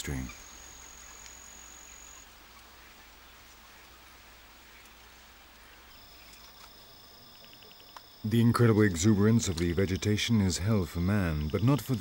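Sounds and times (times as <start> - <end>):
high insect trill: 0.0 - 2.3, 5.9 - 12.0
faint background hiss: 0.0 - 12.0.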